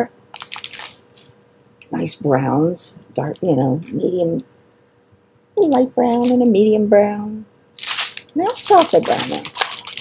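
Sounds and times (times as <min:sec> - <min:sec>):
plastic bags crinkling: 0:00.3 - 0:01.3, 0:07.8 - 0:10.0.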